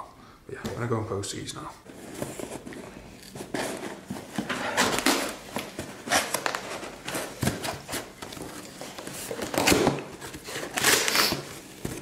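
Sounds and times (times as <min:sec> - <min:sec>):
cardboard rustling: 0:01.8 - 0:12.0.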